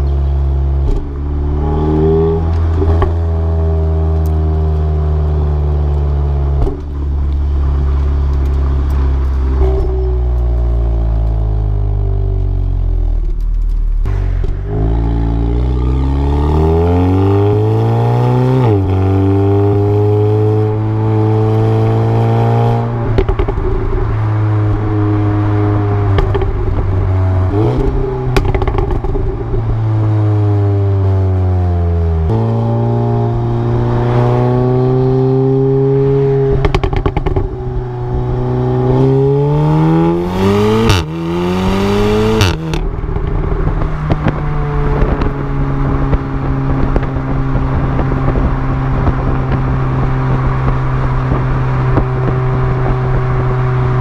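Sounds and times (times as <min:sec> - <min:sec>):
car exhaust while driving: 0:00.0 - 0:54.0.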